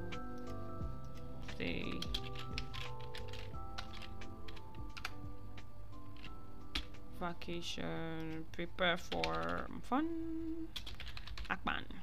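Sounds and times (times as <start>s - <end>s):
background music: 0.0s - 11.6s
typing on computer keyboard: 1.0s - 5.2s, 9.0s - 9.8s, 10.7s - 11.6s.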